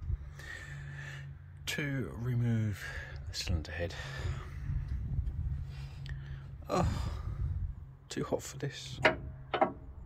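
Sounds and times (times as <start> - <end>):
low background hum: 0.0 - 10.0
man sighing: 6.6 - 7.4.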